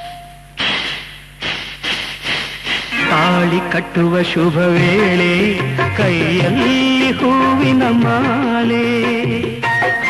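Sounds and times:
cymbal-like percussion strokes: 0.0s - 3.8s
person singing: 3.0s - 9.8s.

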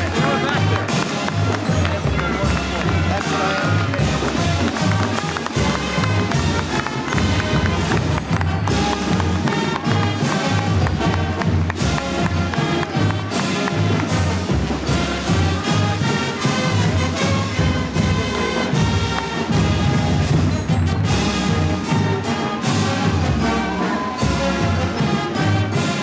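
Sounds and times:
crowd voices: 0.0s - 26.0s
loud band music with brass: 0.0s - 26.0s.

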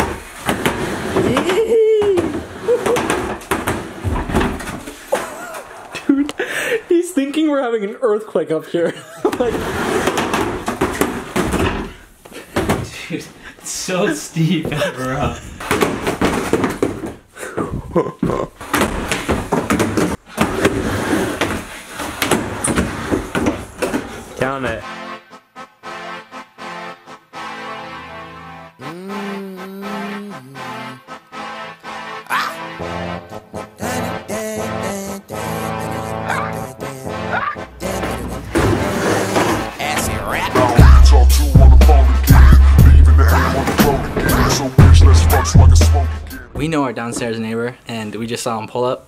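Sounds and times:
skateboard wheels rolling on plywood ramp: 0.0s - 5.3s, 9.3s - 11.9s, 18.6s - 24.4s, 38.0s - 41.0s
people yelling and laughing: 1.3s - 3.1s, 5.1s - 6.3s.

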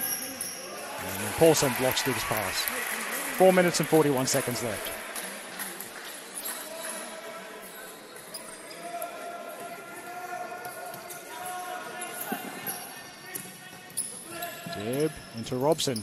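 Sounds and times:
people calling out in a hall: 0.0s - 14.8s.

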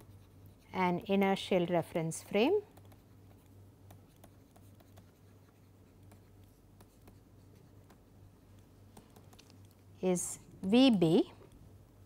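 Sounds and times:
low steady hum: 0.0s - 12.0s
stylus tapping on tablet screen: 2.7s - 5.2s, 6.0s - 7.2s, 8.9s - 9.6s.

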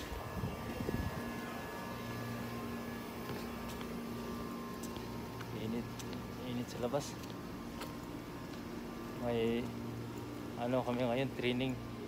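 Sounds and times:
steady hum: 0.0s - 12.0s
thin steady tones: 0.0s - 12.0s.

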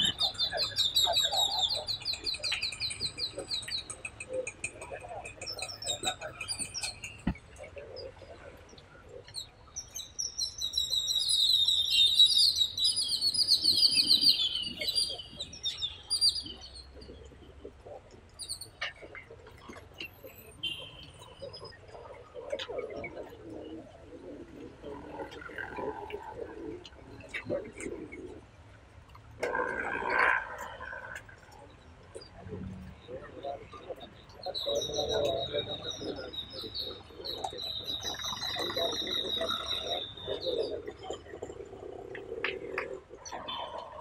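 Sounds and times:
faint murmur of distant voices: 0.0s - 10.0s, 12.9s - 44.0s
many birds chirping: 0.0s - 28.7s, 29.4s - 44.0s.

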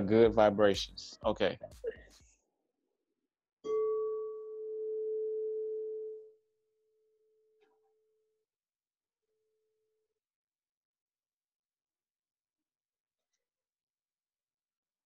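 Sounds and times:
meditation bell ringing: 3.7s - 6.4s.

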